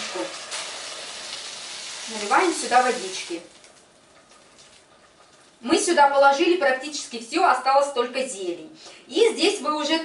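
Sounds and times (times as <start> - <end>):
water pouring into pot: 0.0 - 4.8.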